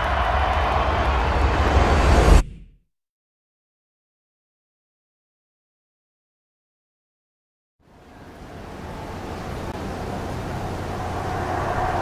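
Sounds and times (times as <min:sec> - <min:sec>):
rushing noise over low rumble: 0:07.9 - 0:12.0.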